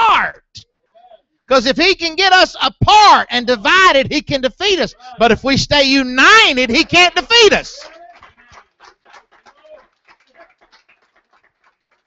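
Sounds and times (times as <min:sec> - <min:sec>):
congregation calling out: 0:00.0 - 0:00.4, 0:01.0 - 0:08.5.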